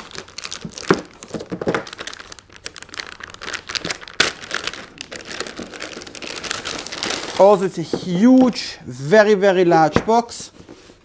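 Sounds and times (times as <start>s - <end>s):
plastic bag crinkling: 0.0s - 8.7s.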